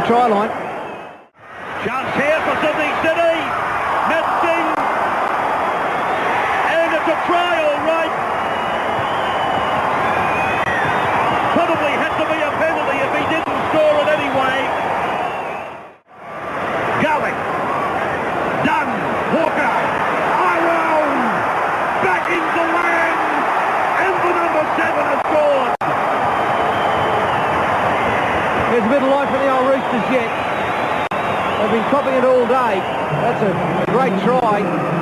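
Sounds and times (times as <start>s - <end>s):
stadium crowd din: 0.0s - 35.0s.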